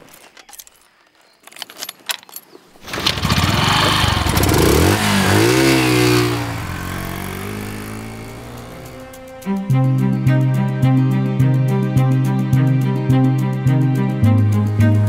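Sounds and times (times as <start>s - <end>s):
motorcycle engine revving: 2.8s - 10.1s.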